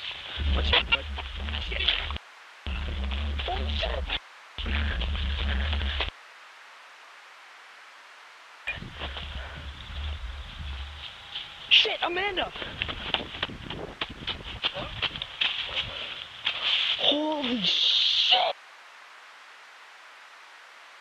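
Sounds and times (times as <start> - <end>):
camera microphone rumbling: 0.0 - 6.1, 8.7 - 16.4
voices: 0.0 - 6.1, 8.7 - 12.9, 14.7 - 15.1, 15.7 - 18.6
faint hiss: 15.2 - 21.0.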